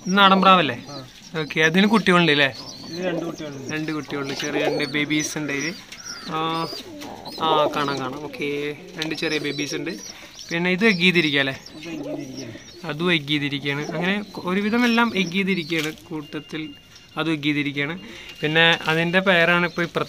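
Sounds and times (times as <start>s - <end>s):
man talking: 0.0s - 20.0s
pigeons cooing: 0.0s - 20.0s.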